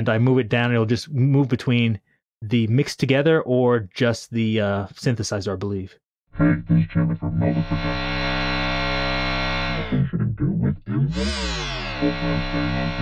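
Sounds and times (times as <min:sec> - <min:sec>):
synthesizer pitch sweep: 0:06.4 - 0:10.0, 0:10.9 - 0:13.0
buzzy synthesizer chord: 0:07.2 - 0:10.0, 0:11.1 - 0:13.0.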